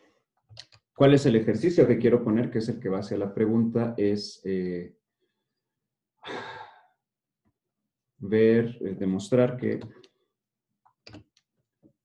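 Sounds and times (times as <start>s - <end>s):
man sighing: 6.2s - 6.9s.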